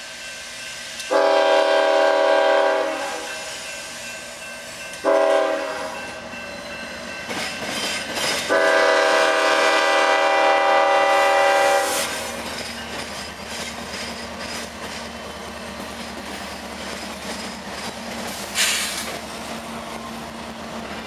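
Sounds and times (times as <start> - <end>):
train rumbling: 0.0 - 21.0
locomotive air horn blasts: 1.1 - 3.4, 5.0 - 6.0, 8.5 - 12.1.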